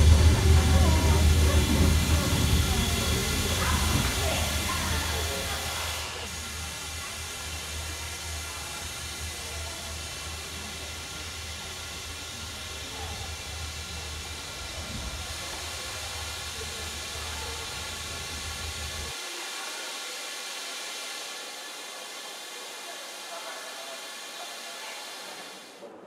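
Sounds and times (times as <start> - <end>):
train low hum: 0.0 - 19.7.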